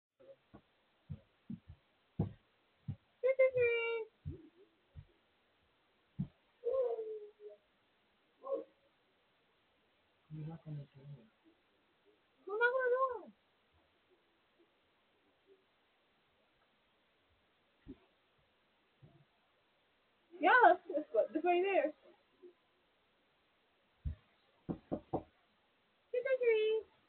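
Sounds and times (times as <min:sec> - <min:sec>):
footsteps on wooden steps: 0:00.5 - 0:03.1.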